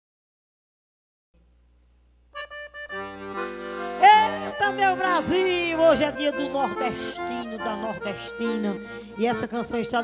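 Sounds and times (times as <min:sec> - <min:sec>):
accordion playing: 0:02.3 - 0:10.0.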